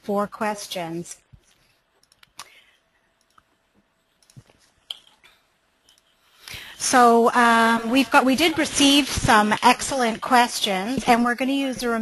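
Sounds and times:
computer mouse clicks: 2.0s - 3.5s, 4.1s - 5.2s.

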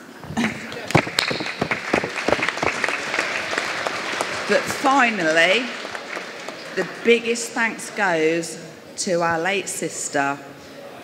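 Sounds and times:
audience applauding: 0.4s - 7.4s.

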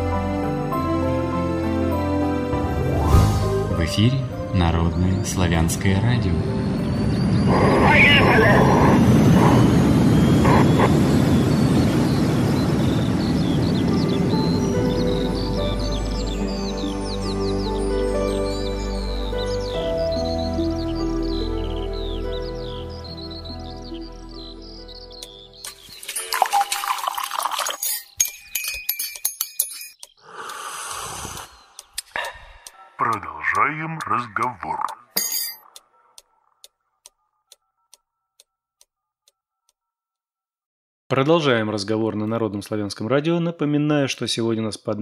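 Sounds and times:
bird chirps: 6.4s - 26.8s, 29.7s - 38.4s
held music chord: 13.0s - 25.2s
glittering chimes and clicks: 25.7s - 30.6s.

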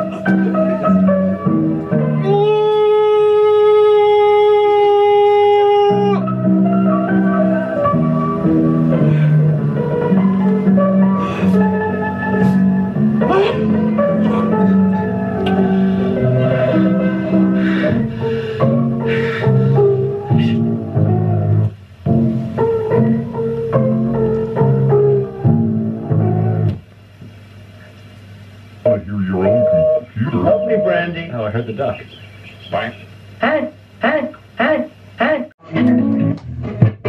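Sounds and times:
electronic keyboard music: 0.0s - 2.4s, 5.9s - 26.7s, 29.3s - 31.4s.

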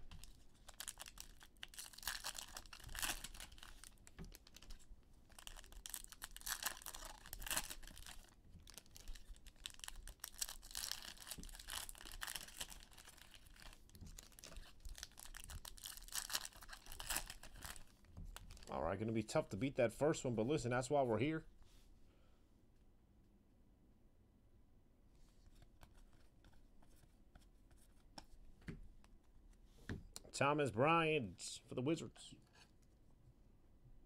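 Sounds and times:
cards being handled: 0.0s - 18.7s, 25.4s - 28.8s
plastic wrapper crinkling: 0.0s - 18.8s.

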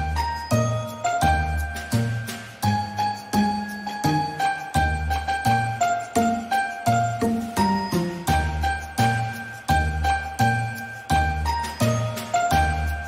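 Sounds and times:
chiming bell-like melody: 0.0s - 13.0s.

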